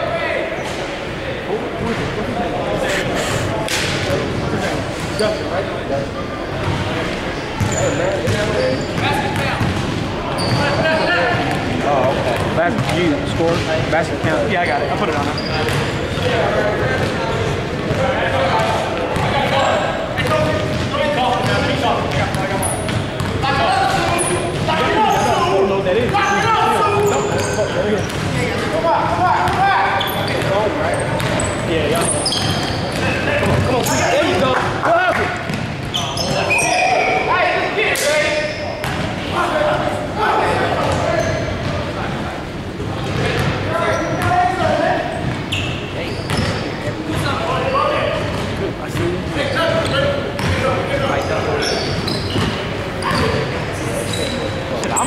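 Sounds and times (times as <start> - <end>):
sneakers squeaking: 3.8 - 5.7, 6.5 - 39.7, 40.3 - 42.1, 43.0 - 55.0
basketball bouncing: 9.4 - 10.0, 12.3 - 14.4, 15.2 - 15.9, 35.5 - 35.8, 50.4 - 50.6.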